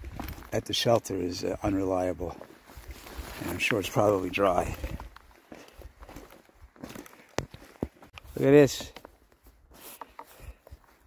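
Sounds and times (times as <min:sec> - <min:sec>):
footsteps on dirt trail: 0:00.0 - 0:11.0.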